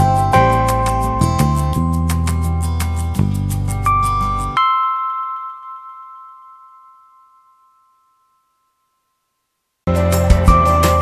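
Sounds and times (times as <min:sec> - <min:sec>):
chime-like music note ringing: 0:03.7 - 0:09.3.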